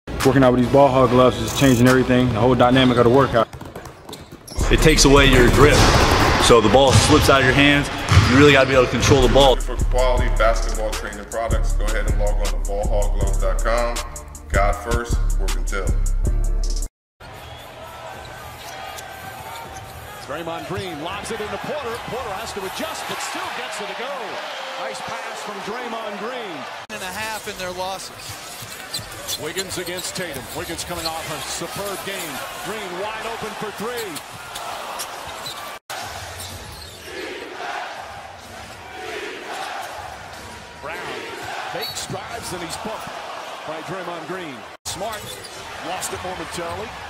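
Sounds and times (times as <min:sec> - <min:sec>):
basketball bouncing on wooden court: 0:03.4 - 0:04.8, 0:08.1 - 0:08.4
arena crowd noise: 0:04.6 - 0:11.3, 0:17.2 - 0:47.0.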